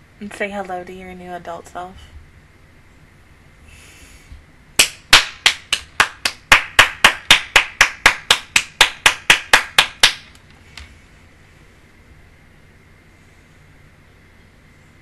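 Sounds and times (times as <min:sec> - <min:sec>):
person clapping hands: 0:04.8 - 0:10.9.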